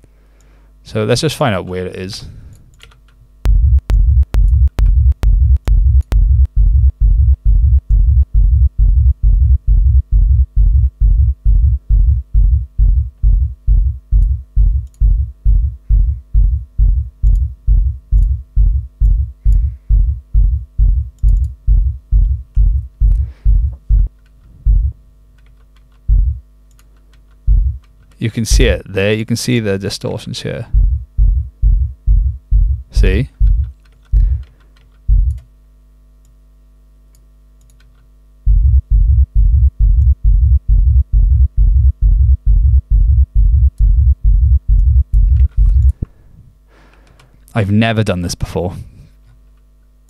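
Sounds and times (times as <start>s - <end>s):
sharp click on kick: 3.4s - 6.3s
kick drum thumping: 3.5s - 25.0s, 26.1s - 26.4s, 27.5s - 27.8s, 28.5s - 28.8s, 30.7s - 34.4s, 35.1s - 35.4s, 38.5s - 46.0s.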